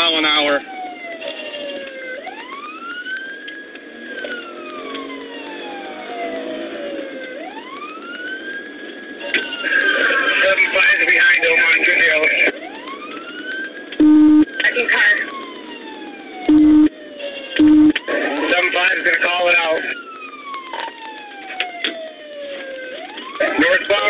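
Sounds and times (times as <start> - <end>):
police siren wailing: 0.0 - 24.0
short low beeps: 14.0 - 14.5, 16.5 - 16.9, 17.6 - 18.0.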